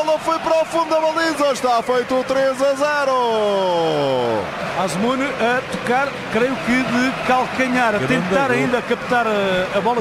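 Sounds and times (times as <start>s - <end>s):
commentator rapid speech: 0.0s - 10.0s.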